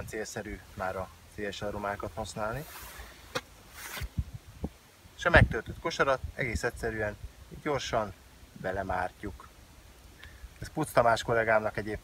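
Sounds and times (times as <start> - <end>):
short breathy hiss: 2.6 - 4.6, 9.5 - 10.6.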